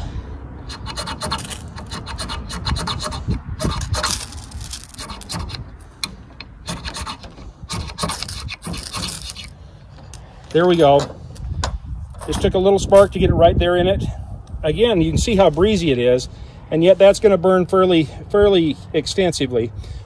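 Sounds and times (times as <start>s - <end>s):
knife spine scraping ferro rod: 0.7s - 10.2s.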